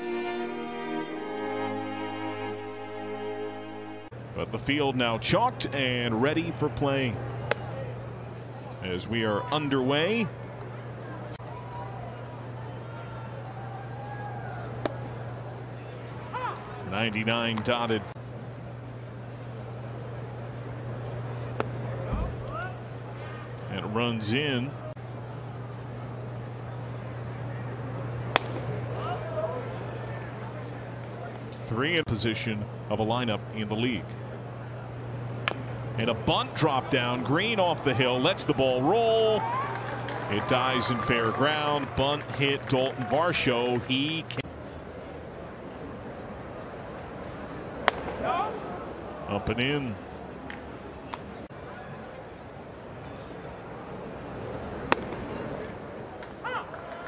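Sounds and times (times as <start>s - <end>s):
murmur of crowd: 24.7s - 31.6s.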